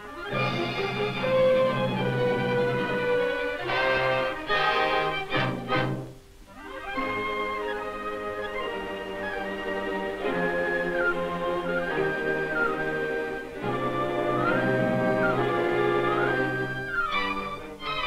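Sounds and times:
orchestral strings sustained notes: 0.0s - 18.0s.

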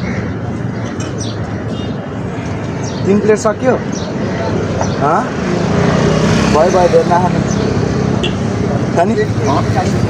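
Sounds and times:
vehicle passing close by: 4.4s - 10.0s
people talking: 6.5s - 7.5s, 8.9s - 10.0s.

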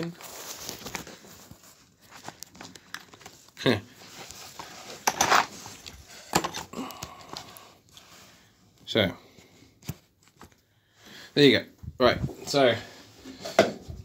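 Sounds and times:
phone being handled rustling: 0.2s - 6.6s.

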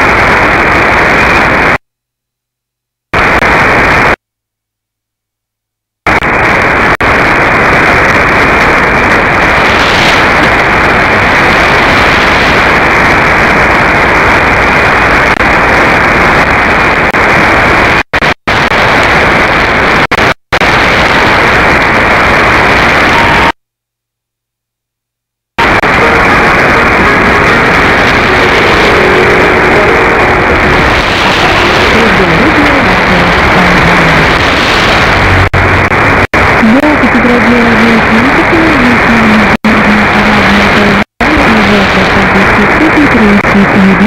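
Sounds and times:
faint steady radio tones: 0.0s - 1.8s, 3.0s - 4.2s, 6.0s - 23.6s, 25.6s - 44.0s
radio static hiss and crackle: 0.0s - 1.9s, 3.1s - 4.2s, 6.0s - 23.6s, 25.5s - 44.0s.

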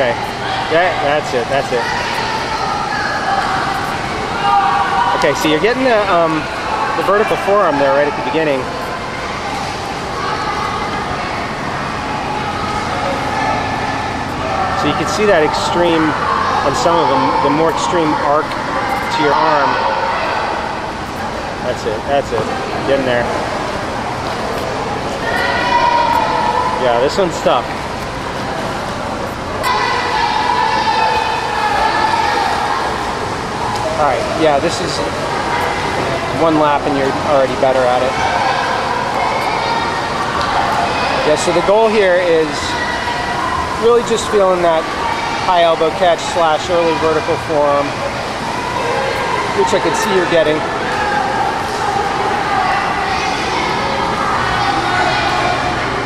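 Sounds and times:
indoor swimming pool rushing noise: 0.0s - 56.0s.

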